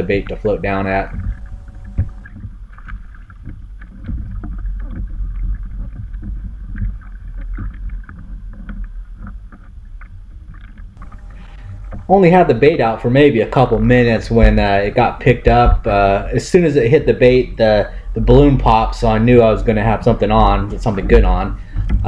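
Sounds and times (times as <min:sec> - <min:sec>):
small waves lapping against hull: 0:00.0 - 0:22.0
wind rumble on microphone: 0:00.0 - 0:22.0.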